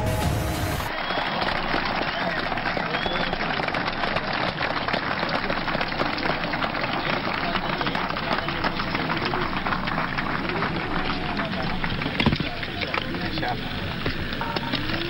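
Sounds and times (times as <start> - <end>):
crowd applauding: 0.0 - 15.0
faint voices: 0.0 - 15.0.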